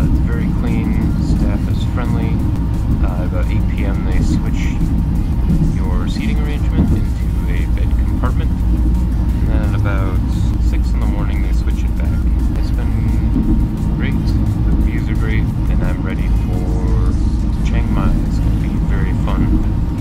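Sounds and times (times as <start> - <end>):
train rumbling inside carriage: 0.0 - 20.0.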